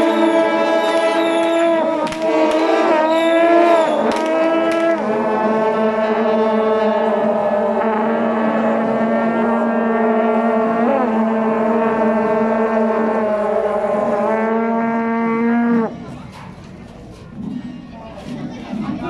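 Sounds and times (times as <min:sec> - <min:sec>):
long steady horn note: 0:00.0 - 0:16.1.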